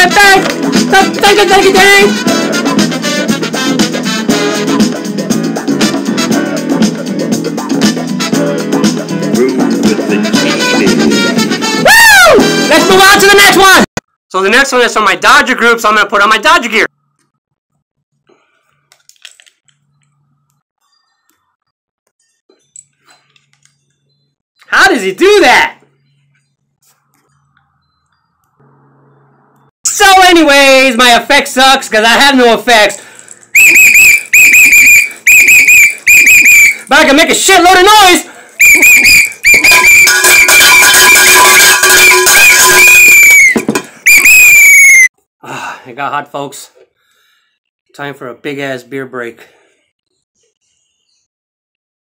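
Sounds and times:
pea whistle trilling blasts: 33.6 - 36.8, 38.6 - 45.1.

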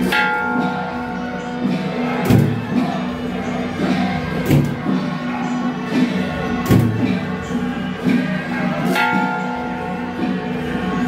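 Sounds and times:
metal percussion ringing: 0.0 - 10.7
procession band playing: 0.0 - 11.0.

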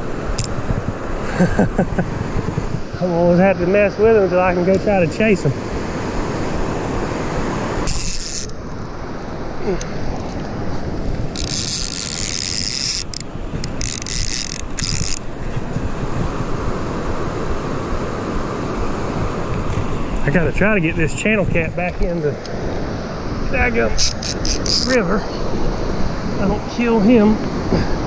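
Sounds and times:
river rushing over dam: 2.6 - 13.6
higher rasping sound: 7.8 - 8.6, 9.6 - 16.1, 23.3 - 25.4.

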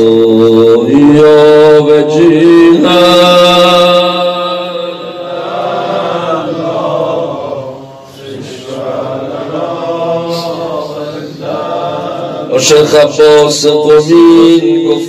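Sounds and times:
man chanting through a microphone: 0.0 - 15.0.

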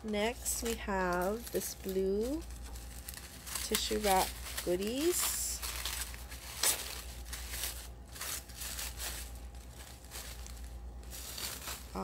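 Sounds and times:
tissue paper crinkling: 0.0 - 12.0.

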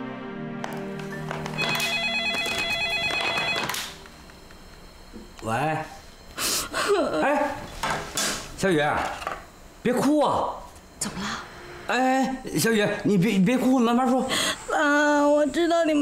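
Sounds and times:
telephone ringing warbling: 1.4 - 4.0.

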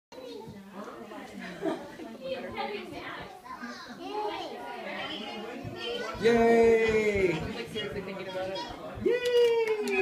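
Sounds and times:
chatter of voices: 0.1 - 10.0.

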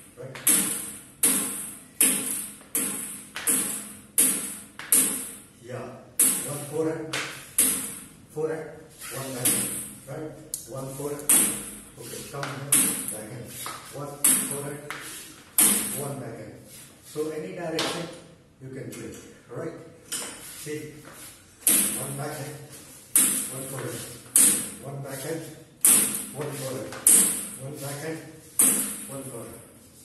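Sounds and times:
table tennis bat hitting ball: 0.4 - 5.4, 6.2 - 8.1, 11.3 - 16.0, 21.6 - 22.2, 23.1 - 24.8, 25.8 - 27.6, 28.5 - 29.2.

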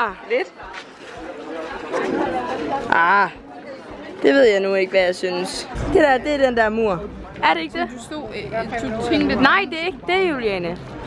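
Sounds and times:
overlapping chatter of people: 0.0 - 11.0.

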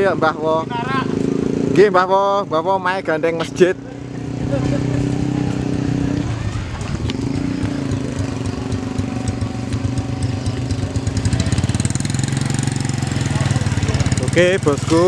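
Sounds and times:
motorcycle engine running: 0.0 - 15.0.

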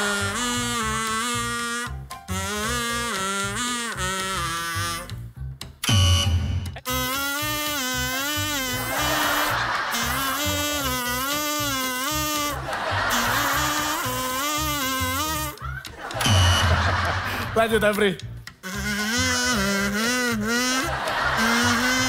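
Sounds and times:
toy trumpet buzzy tune: 0.0 - 17.5, 18.4 - 22.0
backing track low beat: 0.0 - 22.0.

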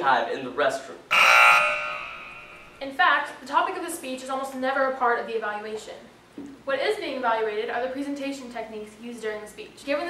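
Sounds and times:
buzzer tone: 1.1 - 2.8.

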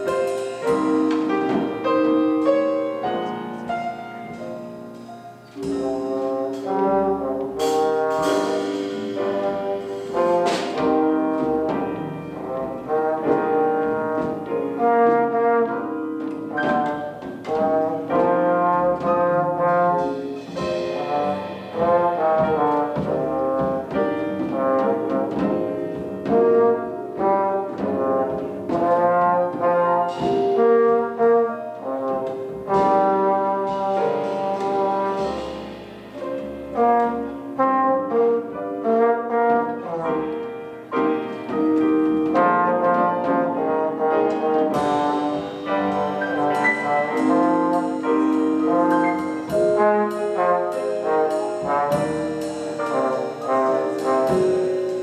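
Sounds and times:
small jazz combo playing: 0.0 - 55.0.

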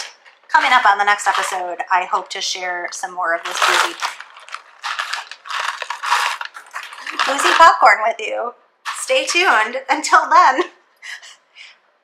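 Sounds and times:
popcorn rattling in plastic tub: 0.0 - 8.0, 8.9 - 9.6.

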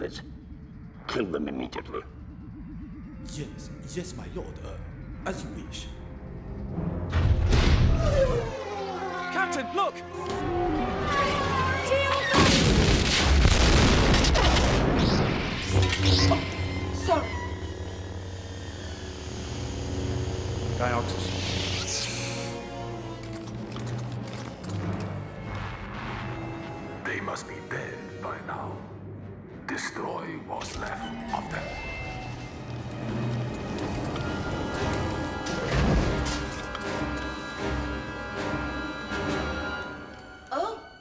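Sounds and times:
lightsaber electric hum: 0.0 - 7.1, 10.2 - 25.8, 30.6 - 40.4
orchestral film music: 3.2 - 41.0.

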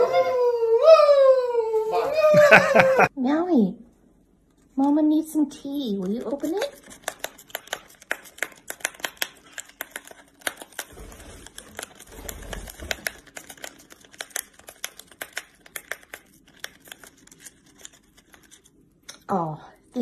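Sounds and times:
paper packet crinkling: 6.0 - 18.8.

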